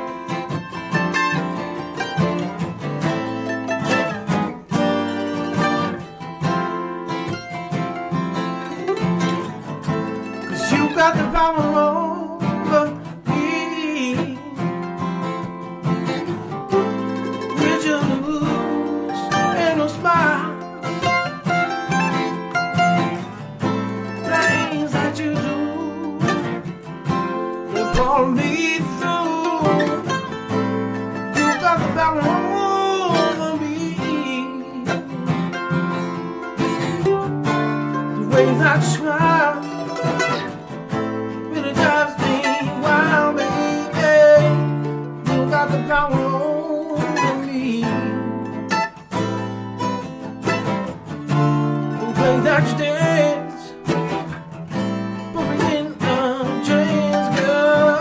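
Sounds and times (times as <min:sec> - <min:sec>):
acoustic guitars strumming: 0:00.0 - 0:58.0
mandolin picking melody: 0:00.0 - 0:58.0.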